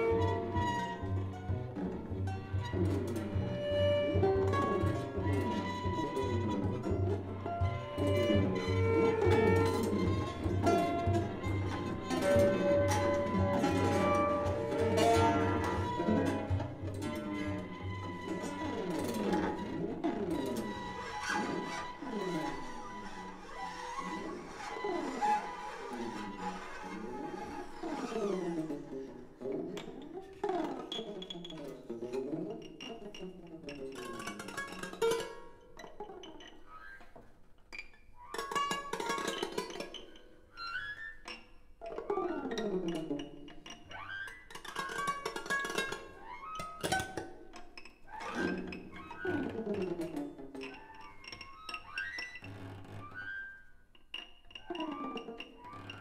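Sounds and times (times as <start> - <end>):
bowed strings sliding glissandi: 0.0 - 37.0, 41.8 - 56.0
scratchy bowed string strokes: 0.0 - 37.2, 38.2 - 56.0.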